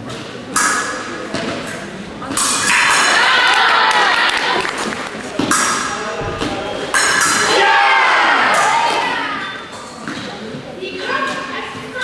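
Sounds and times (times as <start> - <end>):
fencing blades clashing: 0.5 - 3.8, 5.4 - 6.1, 6.9 - 10.2.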